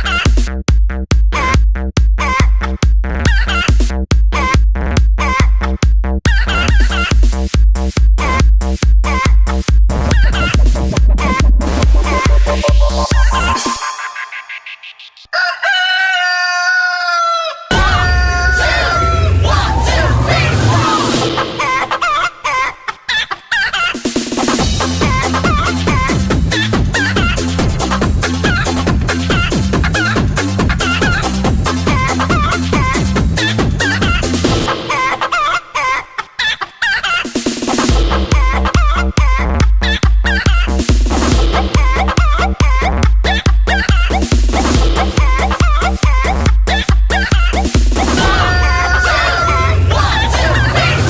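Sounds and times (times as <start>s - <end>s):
dance music bass beat: 0.0s - 15.3s, 17.7s - 21.9s, 24.1s - 35.0s, 37.4s - 51.0s
heavy kick drum: 0.2s - 13.6s, 37.9s - 50.2s
sampled chicken clucks and crowing: 13.6s - 19.1s
rooster crowing: 15.2s - 20.1s, 48.2s - 51.0s.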